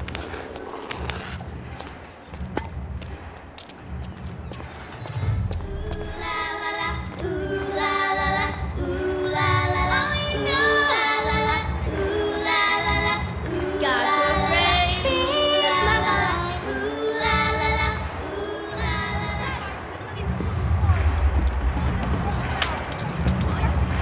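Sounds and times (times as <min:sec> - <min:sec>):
children singing: 0:05.2 - 0:20.1.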